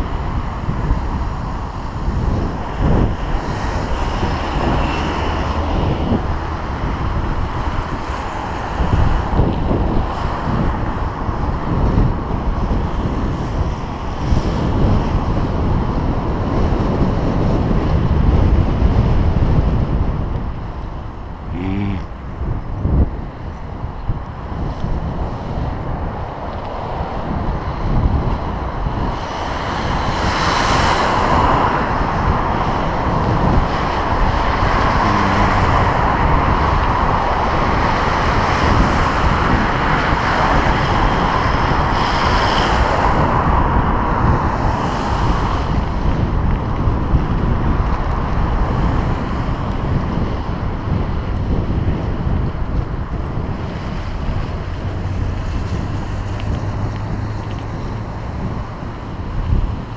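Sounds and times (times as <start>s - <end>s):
passing motor traffic: 0.0s - 59.9s
wind buffeting microphone: 0.0s - 59.9s.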